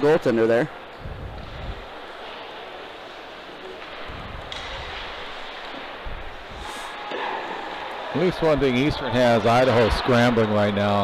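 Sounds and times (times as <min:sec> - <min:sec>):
arena hiss: 0:06.5 - 0:07.0.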